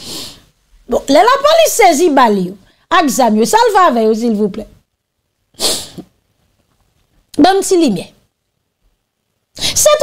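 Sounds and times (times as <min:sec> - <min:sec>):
woman's sharp breathy burst: 0:00.0 - 0:00.6, 0:05.6 - 0:06.1.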